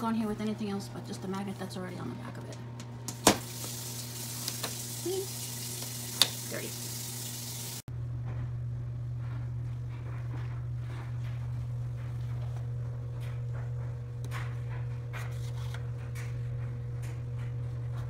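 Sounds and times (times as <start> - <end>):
steady low hum: 7.9 - 18.0.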